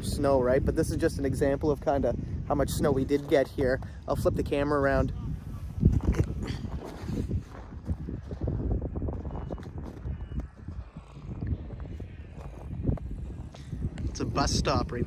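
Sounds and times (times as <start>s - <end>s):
wind rumble on microphone: 0.0s - 15.0s
footsteps crunching on snow: 5.6s - 8.3s, 10.8s - 14.2s.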